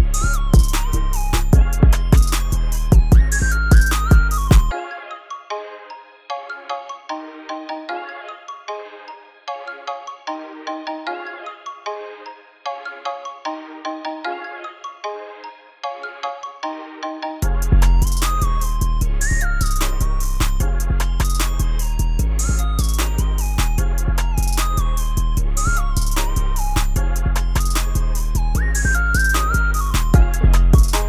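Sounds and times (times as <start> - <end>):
high melodic loop: 0.0 - 5.5, 17.0 - 31.0
hip-hop instrumental: 0.0 - 31.0.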